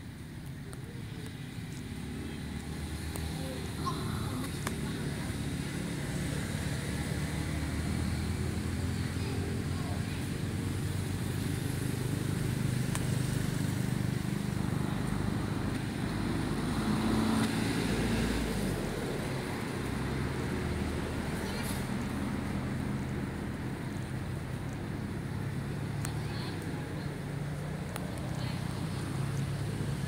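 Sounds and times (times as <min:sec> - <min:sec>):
road traffic rumble: 0:00.0 - 0:30.0.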